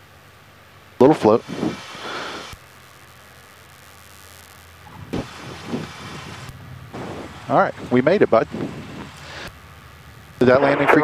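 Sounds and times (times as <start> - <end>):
engine and airflow hiss: 0.0 - 11.0
short rush of noise: 10.4 - 11.0.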